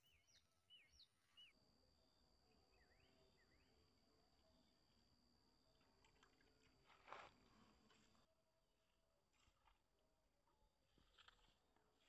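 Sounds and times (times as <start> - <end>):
bird chirping: 0.0 - 1.6
faint steady high tone: 0.0 - 8.1.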